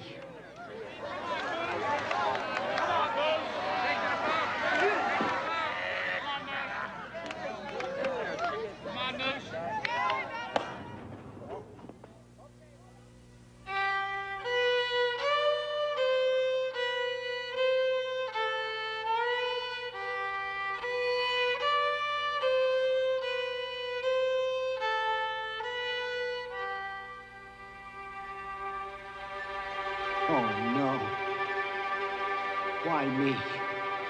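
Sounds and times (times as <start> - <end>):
slow violin melody: 13.6 - 34.0.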